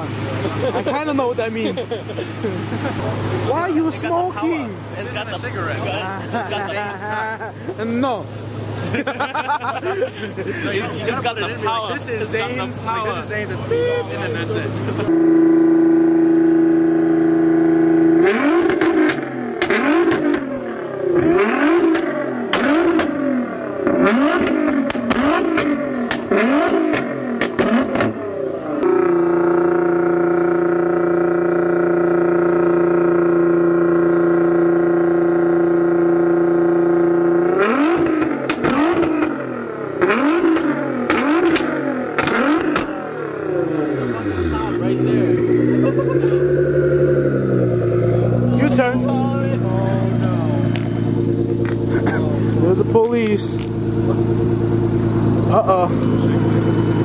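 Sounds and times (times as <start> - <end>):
car engine revving: 0.0 - 57.0
exhaust cracks: 17.4 - 57.0.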